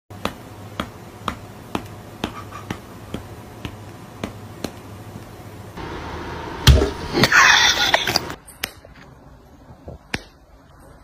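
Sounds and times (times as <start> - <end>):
low steady hum: 0.2 - 11.0.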